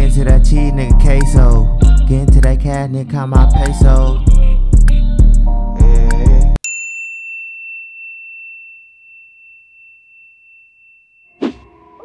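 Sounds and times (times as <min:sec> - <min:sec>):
service bell ringing: 0:06.6 - 0:11.4.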